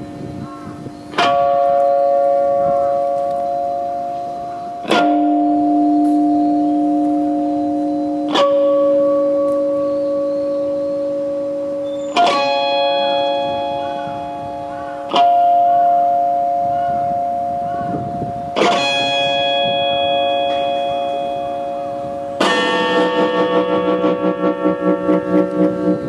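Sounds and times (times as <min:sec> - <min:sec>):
electric guitar chords ringing: 0:00.0 - 0:26.0.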